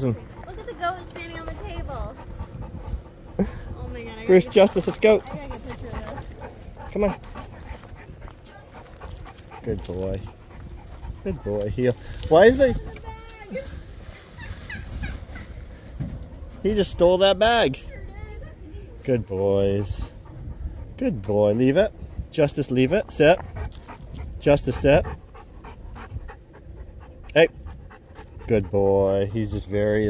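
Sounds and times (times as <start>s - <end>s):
dog panting: 0.0s - 13.8s, 19.0s - 30.0s.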